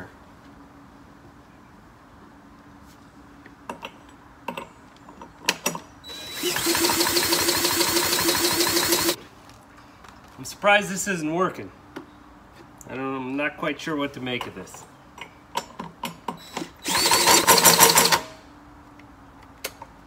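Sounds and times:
cordless drill whining: 6.1 - 9.2, 16.4 - 18.3.

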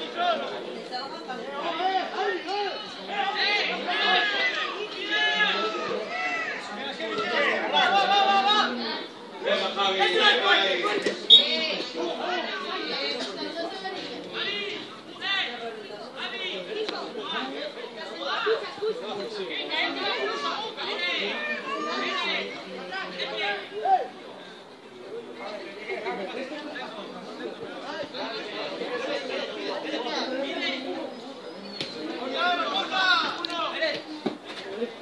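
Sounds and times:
overlapping chatter: 0.0 - 35.0.

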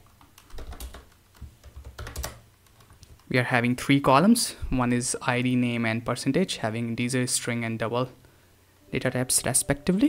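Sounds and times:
computer keyboard key clicks: 0.1 - 3.3.

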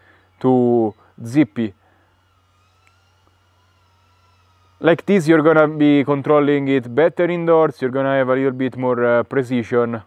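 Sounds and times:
faint steady whine: 0.0 - 10.0
low hum: 0.0 - 10.0.

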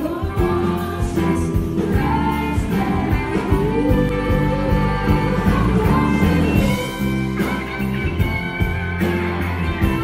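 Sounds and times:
electric bass: 0.0 - 10.0
electric guitar: 0.0 - 10.0.

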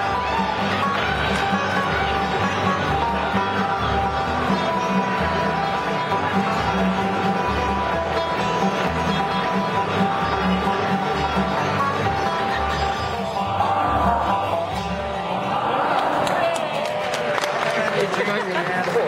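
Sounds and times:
upright bass: 0.0 - 15.7
bluegrass band playing: 0.0 - 16.0
plucked guitars: 0.0 - 16.8.

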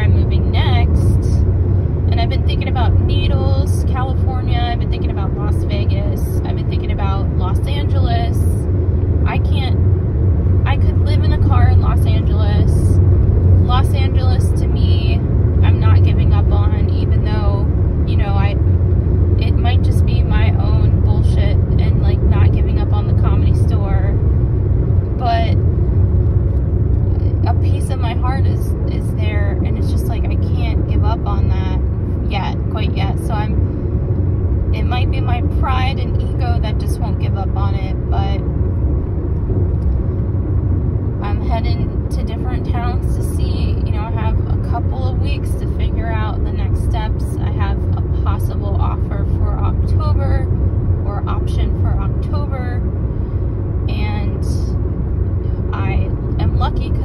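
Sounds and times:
car cabin road rumble: 0.0 - 57.0
person talking: 25.2 - 25.6, 41.2 - 50.4, 55.7 - 57.0.

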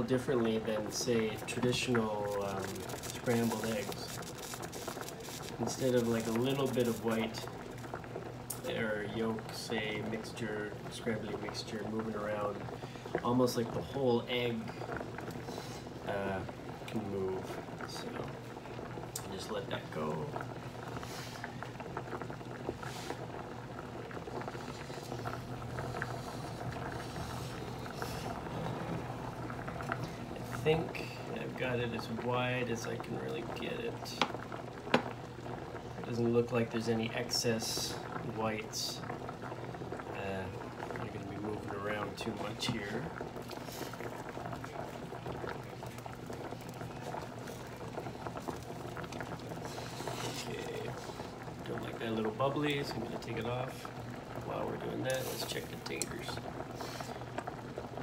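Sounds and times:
pot of water boiling: 0.0 - 58.0
small pops crackling: 1.2 - 8.8, 17.8 - 28.2, 34.1 - 36.2, 39.0 - 58.0.

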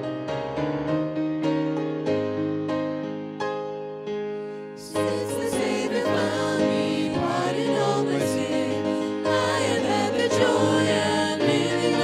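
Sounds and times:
piano playing chords: 0.0 - 12.0.

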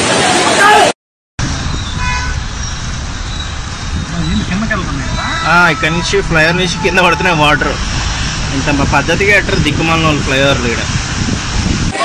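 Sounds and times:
rushing floodwater: 0.0 - 0.9, 1.5 - 12.0
road traffic rumble: 1.4 - 12.0
car horn toot: 2.0 - 2.5.

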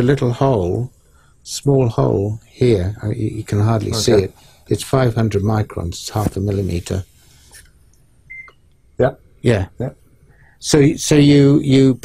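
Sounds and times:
faint high beep: 8.3 - 8.6.

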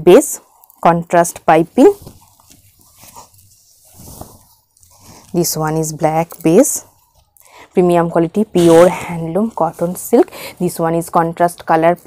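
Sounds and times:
fabric rustling: 1.2 - 11.1.

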